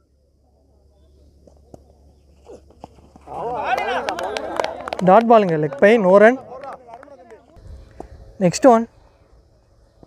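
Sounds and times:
men calling out: 3.2 - 7.5.

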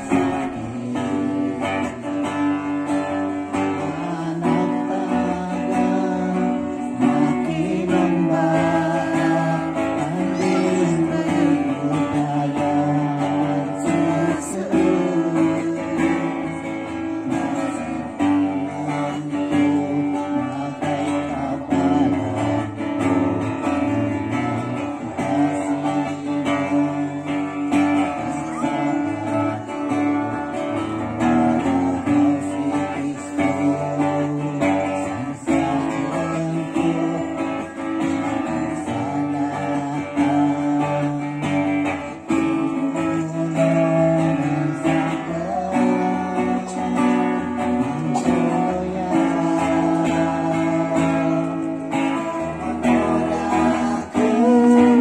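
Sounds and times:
man singing: 0.0 - 55.0
strummed acoustic guitar: 0.0 - 55.0.

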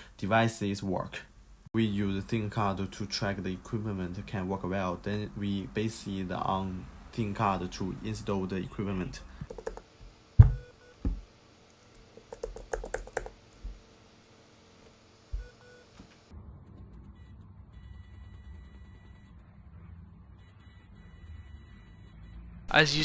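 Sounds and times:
sharp knocks and clicks: 9.5 - 11.2
high electronic buzzer beep: 17.2 - 19.4, 20.4 - 22.7.

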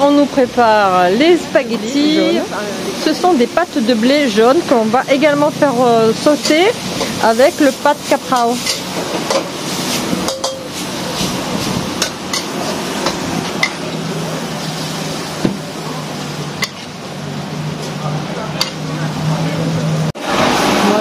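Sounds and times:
frying hiss: 0.0 - 21.0
spatula scraping a metal wok: 6.2 - 13.7.

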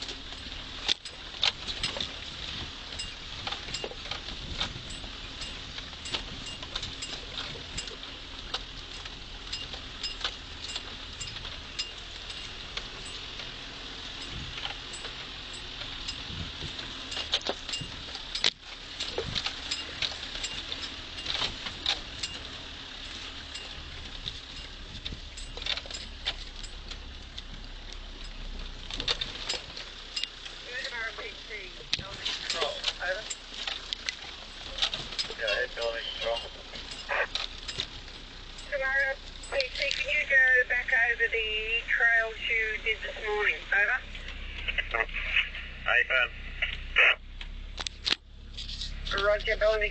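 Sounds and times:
low engine drone: 0.0 - 49.9
vehicle rattles and knocks: 0.0 - 49.9
muffled speech: 44.7 - 47.2.

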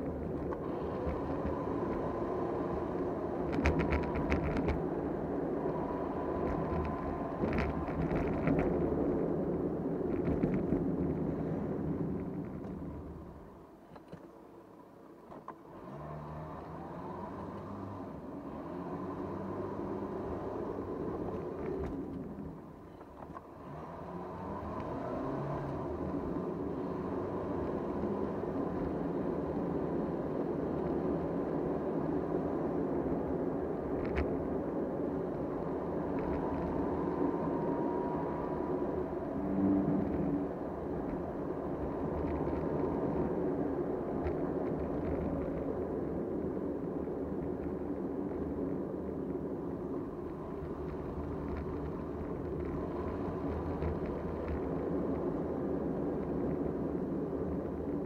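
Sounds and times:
car engine and tyre noise: 0.0 - 58.0.

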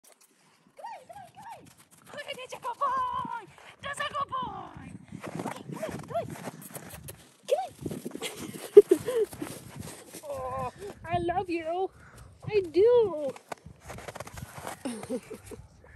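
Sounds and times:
woman calling and cooing: 0.8 - 3.4
footsteps crunching on snow: 5.2 - 11.0, 12.5 - 15.6.

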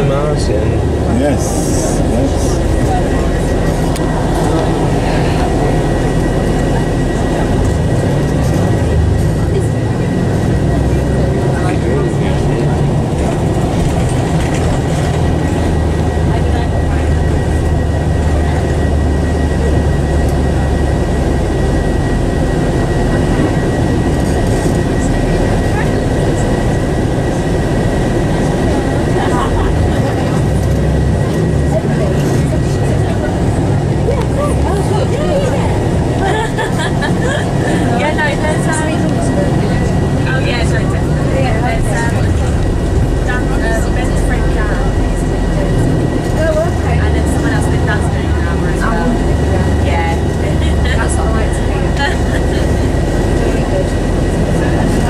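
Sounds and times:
diesel engine drone: 0.0 - 55.0
road noise: 0.0 - 55.0.

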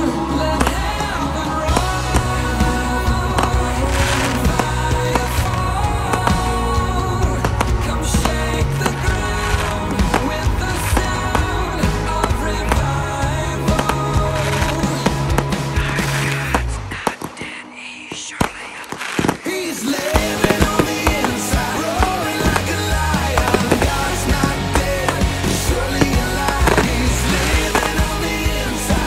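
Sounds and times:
loud music: 0.0 - 17.1, 19.4 - 29.0
fireworks launching and bursting: 0.0 - 29.0.

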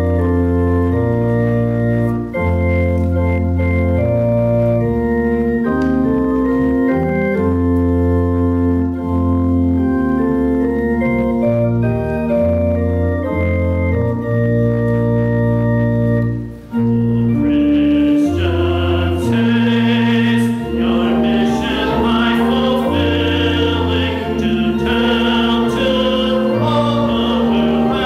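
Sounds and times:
organ playing chords: 0.0 - 28.0
congregation singing a hymn: 16.7 - 28.0.

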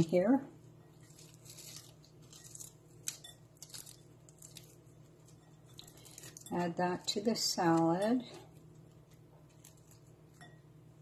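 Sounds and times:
crisp bacon being crumbled: 0.9 - 10.5
bacon pieces dropping into salad: 1.0 - 10.5.

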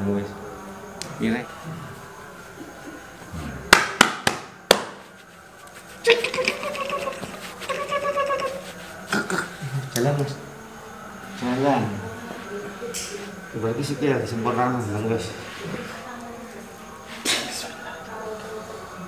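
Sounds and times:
long held vocal sounds: 1.6 - 3.7, 6.0 - 9.9
hands smacking body: 3.7 - 5.1.

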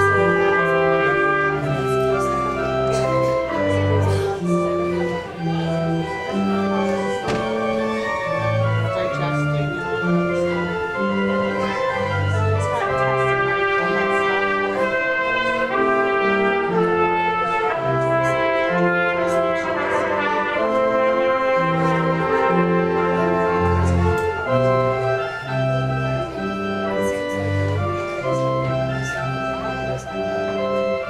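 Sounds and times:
church organ playing chords: 0.0 - 31.0.

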